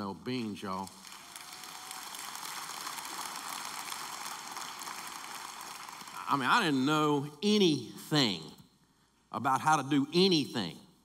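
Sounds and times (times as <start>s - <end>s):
audience applauding: 0.6s - 6.8s.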